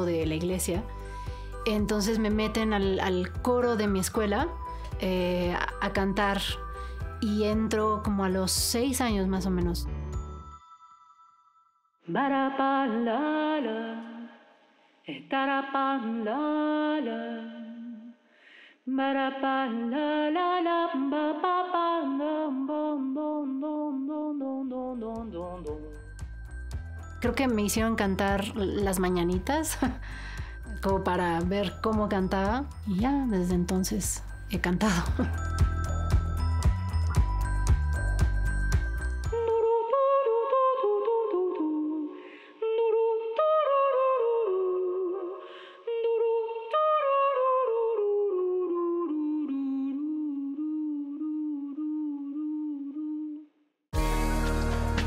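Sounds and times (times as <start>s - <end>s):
singer breathing: 0.9s - 1.6s, 6.6s - 7.2s, 18.2s - 18.9s, 30.0s - 30.7s, 42.1s - 42.6s, 45.4s - 45.9s
woman singing unaccompanied: 12.1s - 14.3s, 15.1s - 18.2s, 18.9s - 26.0s, 39.4s - 53.5s.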